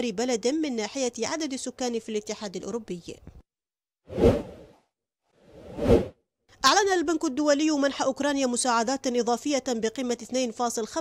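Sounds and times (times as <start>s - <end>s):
whoosh transition effects: 5.5s - 6.1s.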